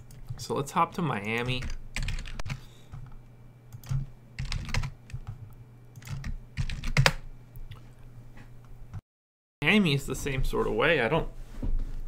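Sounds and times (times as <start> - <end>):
low steady hum: 0.0 - 9.0
computer keyboard typing: 1.2 - 3.0, 3.7 - 5.4, 6.0 - 7.2.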